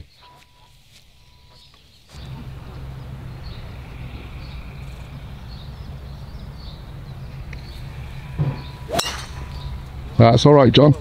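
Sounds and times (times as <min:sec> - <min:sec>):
golf driver striking ball: 0:02.2 - 0:10.2.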